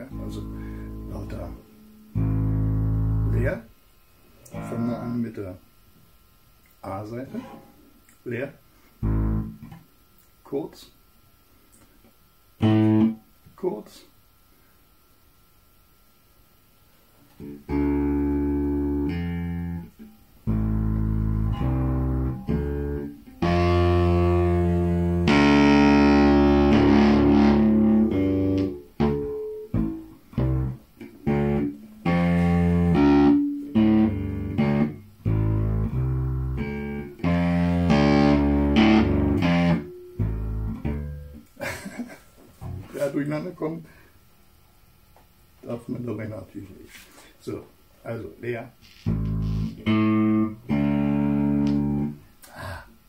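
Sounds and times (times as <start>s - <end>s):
electric bass guitar: 0.0s - 3.7s, 4.4s - 5.6s, 9.0s - 9.9s, 12.6s - 13.2s, 17.4s - 41.6s, 42.6s - 43.0s, 48.8s - 52.8s.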